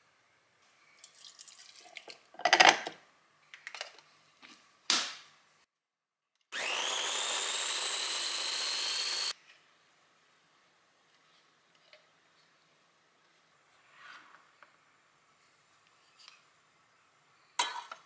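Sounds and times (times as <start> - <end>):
milk pouring and splashing: 1.0 - 2.3
mini chopper motor whining: 6.5 - 9.3.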